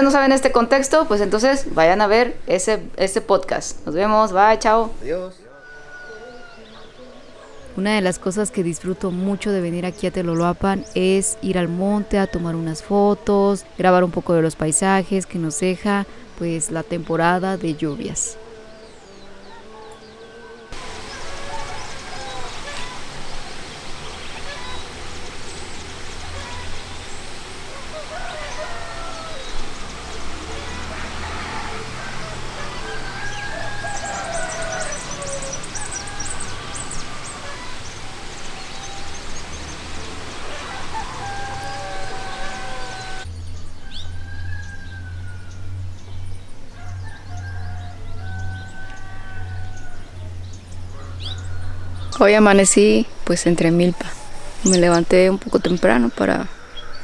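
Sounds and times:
birds calling: 0:00.0 - 0:57.0
rooster crowing: 0:05.4 - 0:07.8, 0:18.4 - 0:23.6, 0:26.3 - 0:45.9, 0:46.6 - 0:52.2.

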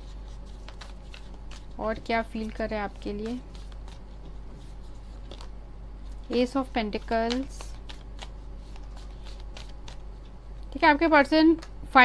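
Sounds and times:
steady low hum: 0:00.0 - 0:12.0
cards shuffling clicks: 0:00.1 - 0:10.8.

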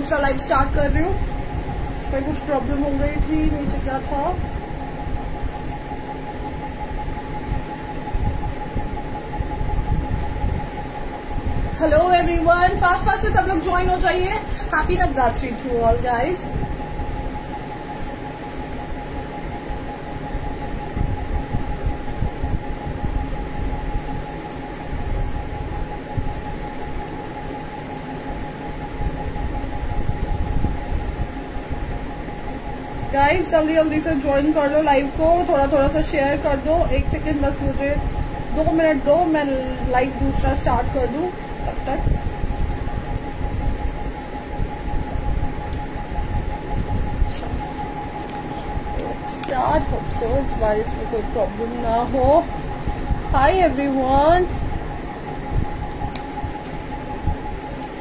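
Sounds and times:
background hum and rumble: 0:00.0 - 0:58.0
constant high tone: 0:00.0 - 0:58.0.

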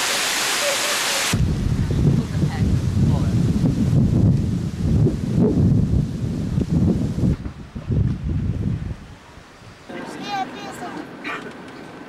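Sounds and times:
wind buffeting microphone: 0:01.3 - 0:09.9.

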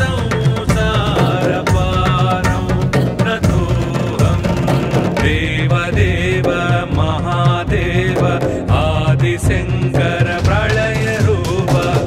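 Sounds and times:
sung devotional chant: 0:00.0 - 0:12.0.

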